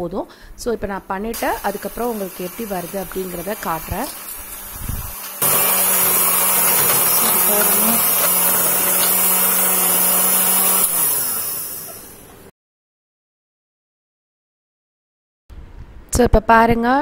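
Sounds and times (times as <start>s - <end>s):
electric hand mixer humming: 1.4s - 12.4s
mixer winding down: 1.4s - 12.5s.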